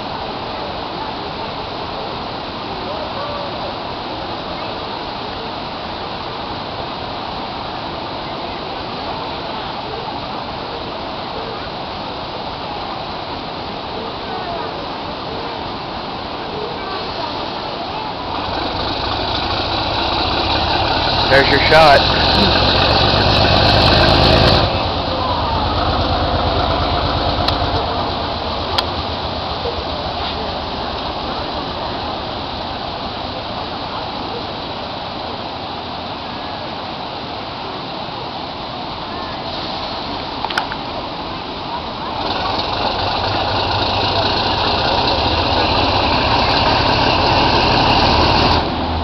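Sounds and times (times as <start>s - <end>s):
train engine and running rumble: 14.9s - 36.2s, 37.8s - 49.0s.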